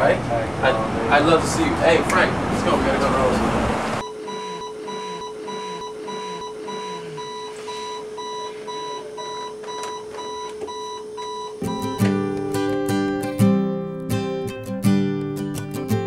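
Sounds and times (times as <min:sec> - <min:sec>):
alarm clock beeping: 0:04.0 - 0:12.2
acoustic guitar music: 0:11.6 - 0:16.0.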